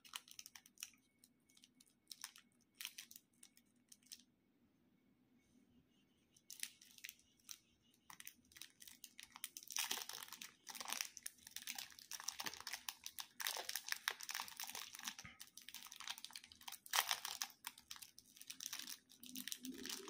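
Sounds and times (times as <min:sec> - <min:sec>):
plastic candy wrapper crinkling: 0:00.0 - 0:04.3, 0:06.4 - 0:20.0.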